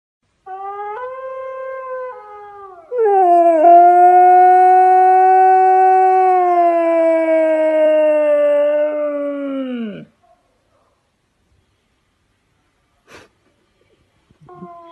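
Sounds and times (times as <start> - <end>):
dog howling: 0.5 - 10.1.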